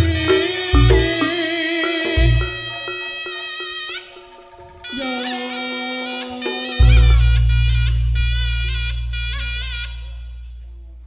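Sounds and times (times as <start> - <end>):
reedy shawm melody: 0.0 - 10.5.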